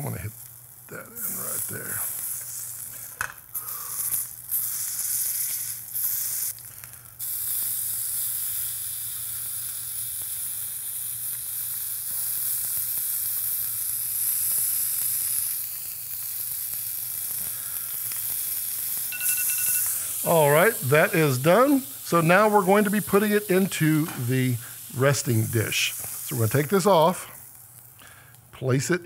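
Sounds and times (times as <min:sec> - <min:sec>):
steak sizzling in a skillet: 0:00.0 - 0:28.4.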